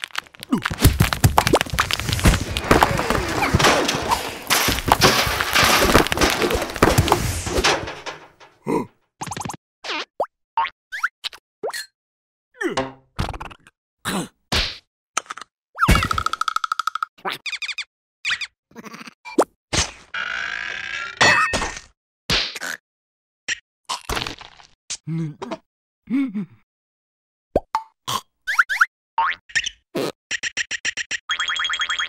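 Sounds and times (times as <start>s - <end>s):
cartoon clatter: 0.7s - 8.5s.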